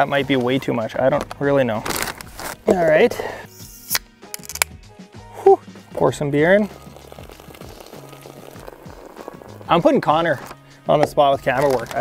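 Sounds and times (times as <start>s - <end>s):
low background music: 0.0s - 12.0s
beer pouring and fizzing: 6.0s - 10.8s.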